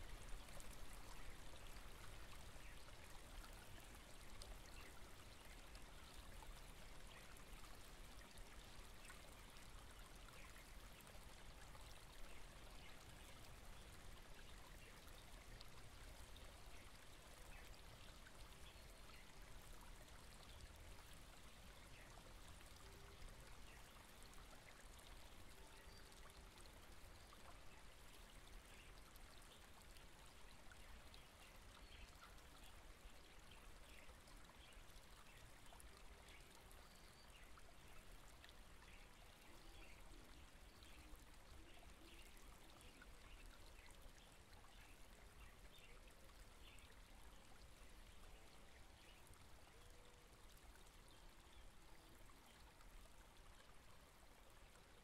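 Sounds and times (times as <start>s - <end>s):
stream trickling and babbling: 0.0s - 55.0s.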